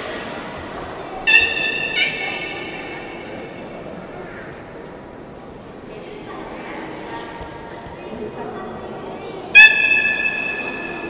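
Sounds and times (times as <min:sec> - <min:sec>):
high steady whistle: 0:01.3 - 0:02.8.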